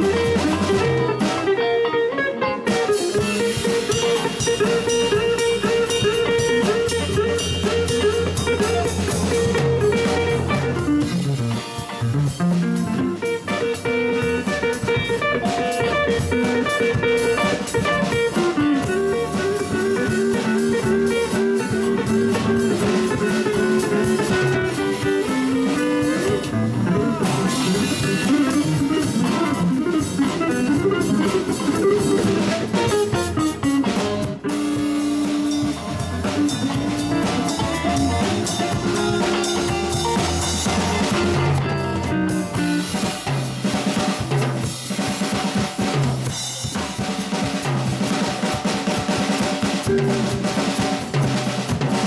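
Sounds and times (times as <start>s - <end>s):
electric guitar lead lines: 0.0s - 51.4s
drum kit: 0.0s - 52.0s
electric bass: 0.0s - 52.0s.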